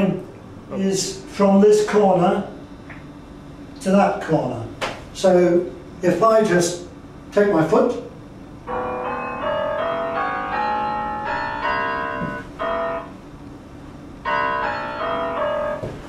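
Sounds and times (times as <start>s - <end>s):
synth piano note runs: 8.7s - 13.4s, 14.2s - 16.0s.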